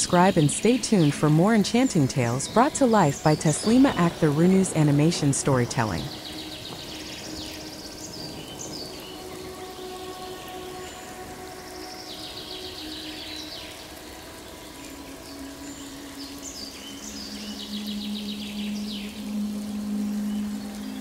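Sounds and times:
birds chirping and trilling: 0.0s - 21.0s
rain-like hiss: 0.0s - 21.0s.

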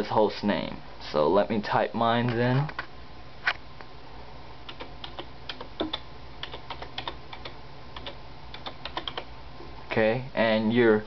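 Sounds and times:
keyboard key clicks: 4.7s - 9.3s.

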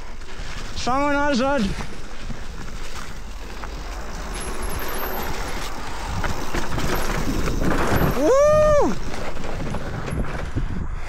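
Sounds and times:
bike rattling over bumps: 0.0s - 11.0s
bike tyres on dirt: 0.0s - 11.0s
wind rumble on microphone: 4.6s - 11.0s.

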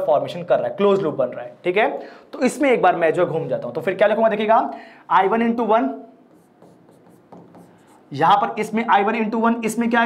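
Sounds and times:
pen tapping and scraping on screen: 6.3s - 8.1s.

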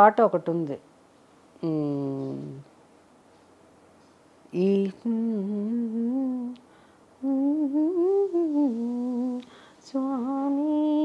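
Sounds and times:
woman humming: 1.6s - 2.7s, 4.6s - 6.6s, 7.2s - 11.0s.

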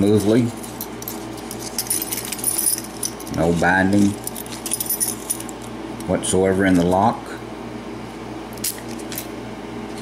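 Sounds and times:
keys jingling: 0.2s - 5.6s.

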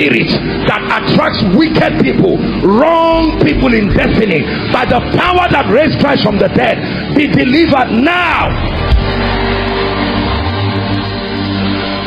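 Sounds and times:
music with sustained chords and bass: 0.0s - 12.0s.

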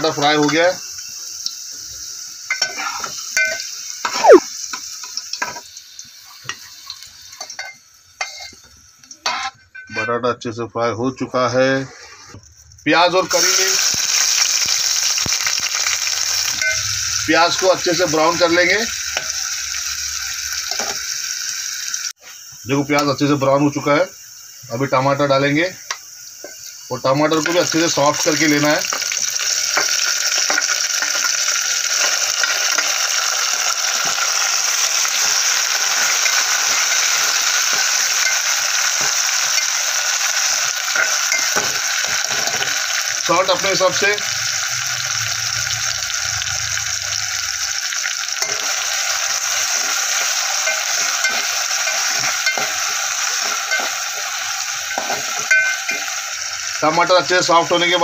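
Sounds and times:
onions sizzling in hot oil: 0.0s - 58.0s
spoon scraping a pan: 7.4s - 10.1s, 36.0s - 43.0s, 48.4s - 56.2s.

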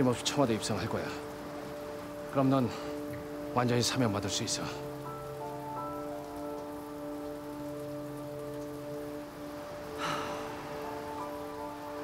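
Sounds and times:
soft sustained chord: 0.0s - 12.0s
breathy noise: 10.0s - 10.6s.

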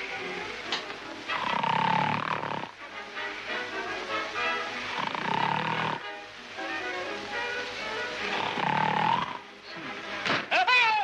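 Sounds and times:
man snoring: 1.3s - 2.8s, 4.9s - 6.0s, 8.2s - 9.5s.

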